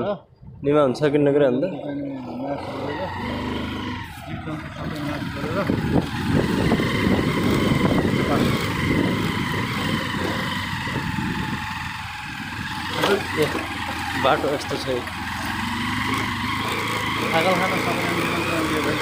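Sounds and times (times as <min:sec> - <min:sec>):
vehicle rumbling on dirt track: 0:00.8 - 0:19.0.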